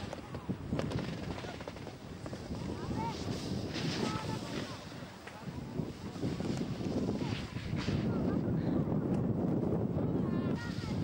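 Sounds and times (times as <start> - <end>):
faint voices: 0.0 - 11.0
wind rumbling on microphone: 0.0 - 11.0.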